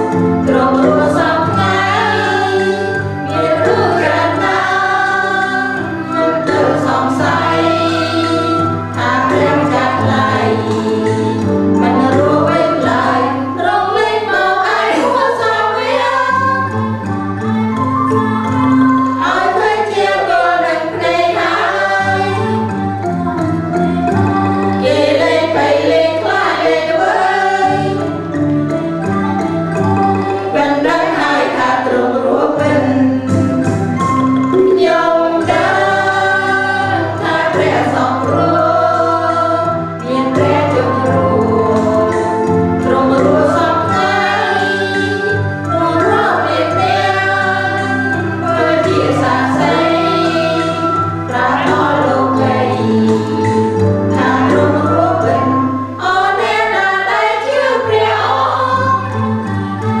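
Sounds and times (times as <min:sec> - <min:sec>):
instrumental backing: 0:00.0 - 1:00.0
mixed choir singing a hymn: 0:00.0 - 1:00.0.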